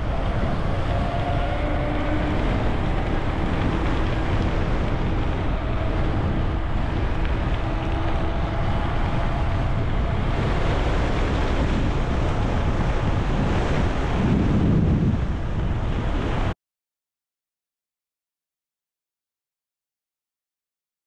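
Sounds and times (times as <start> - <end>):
wind rush on microphone: 0.0 - 16.6.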